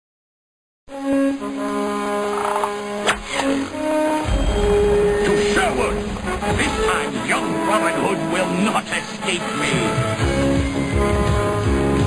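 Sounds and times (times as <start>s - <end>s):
theme music with brass chords: 0.9s - 12.0s.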